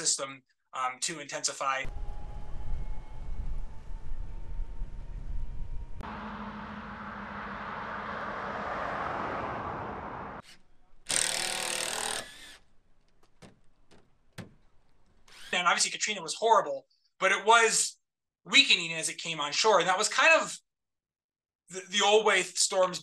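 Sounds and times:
wind rumbling on microphone: 1.9s - 10.4s
vehicle passing on road: 1.9s - 11.0s
cordless drill driving screw: 10.4s - 12.7s, 15.2s - 15.6s.

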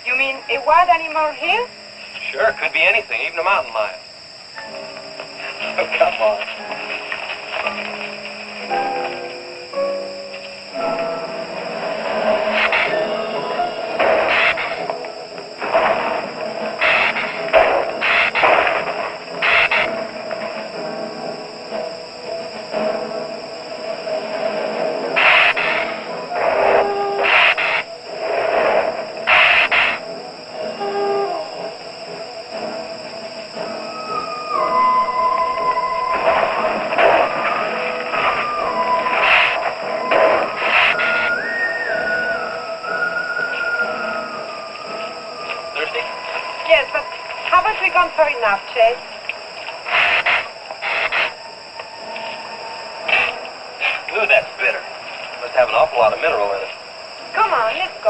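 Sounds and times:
suspense film score: 0.0s - 58.0s.

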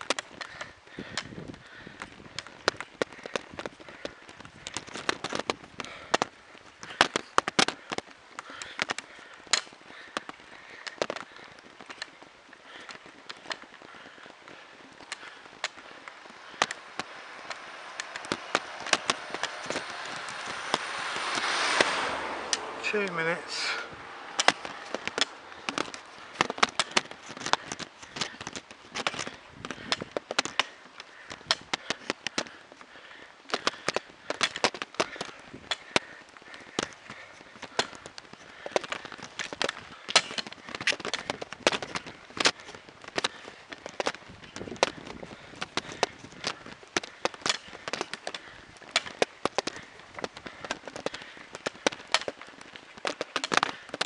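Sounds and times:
camera rattling on bicycle: 0.0s - 54.0s.

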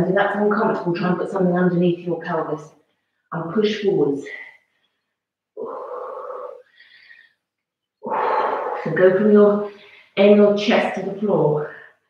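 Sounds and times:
woman speaking: 0.0s - 2.7s, 3.3s - 4.6s, 5.6s - 6.7s, 8.0s - 11.8s
faint breathy sound: 8.0s - 9.0s.

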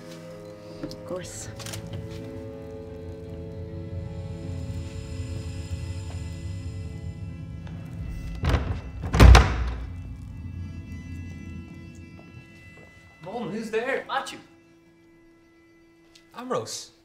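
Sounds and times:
low sustained film score tones: 0.0s - 16.0s
heavy door thudding shut: 7.4s - 11.0s.

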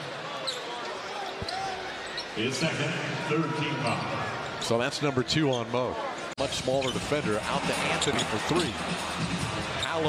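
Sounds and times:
faint crowd voices: 0.0s - 10.0s.

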